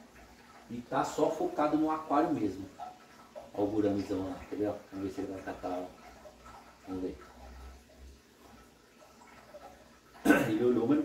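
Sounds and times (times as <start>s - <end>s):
faint aquarium water noise: 0.0s - 11.0s.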